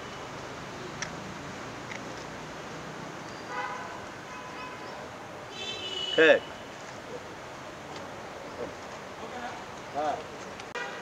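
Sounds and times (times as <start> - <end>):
distant traffic: 0.0 - 11.0.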